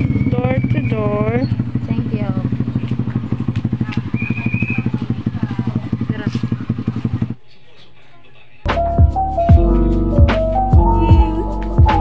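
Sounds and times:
small motorcycle engine running: 0.0 - 7.4
voices talking: 0.0 - 8.7.

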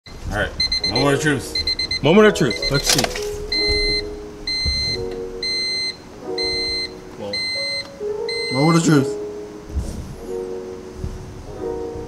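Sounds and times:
high electronic beeps: 0.6 - 2.9.

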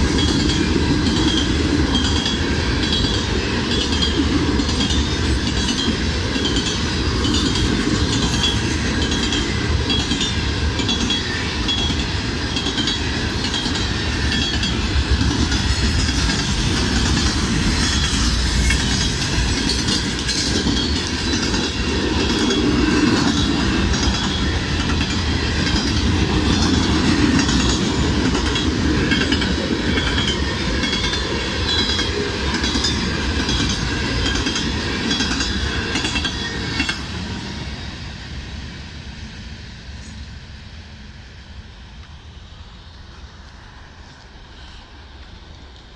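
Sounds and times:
train wheels rumbling and clacking: 0.0 - 45.9.

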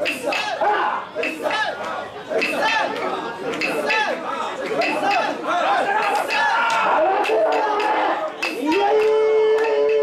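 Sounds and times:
crowd chanting and shouting: 0.0 - 10.0.

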